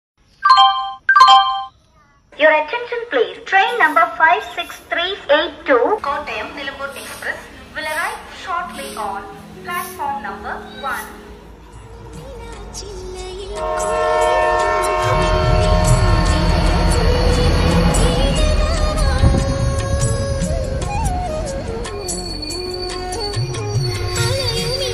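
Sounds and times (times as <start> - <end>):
electronic two-tone chime: 0.4 - 1.7
locomotive and wheels rumbling: 2.4 - 24.9
train horn blast: 13.4 - 20.0.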